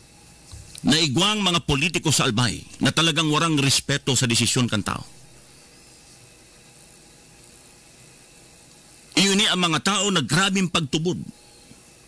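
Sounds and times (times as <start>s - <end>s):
faint hum: 0.0s - 12.0s
low microphone hiss: 0.0s - 12.0s.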